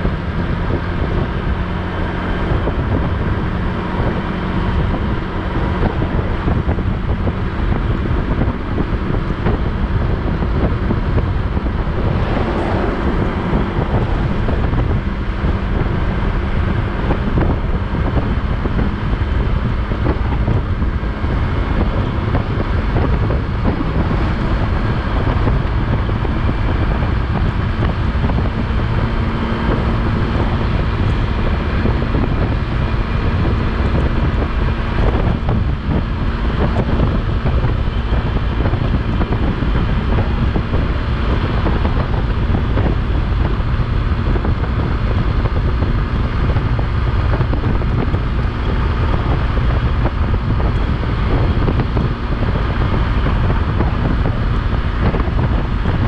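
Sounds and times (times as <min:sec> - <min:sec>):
motorcycle engine humming: 0:00.0 - 0:56.0
wind buffeting microphone: 0:00.0 - 0:56.0.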